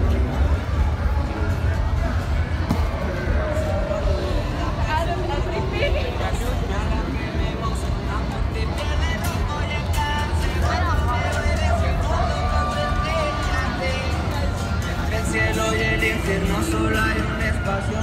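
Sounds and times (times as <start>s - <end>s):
people chattering: 0.0s - 18.0s
steady bass: 0.0s - 18.0s.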